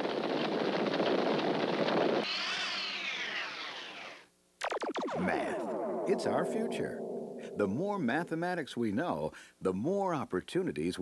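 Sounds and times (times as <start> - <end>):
dense crackling hiss: 0.0 - 11.0
swooping multi-tone sweep: 2.3 - 8.6.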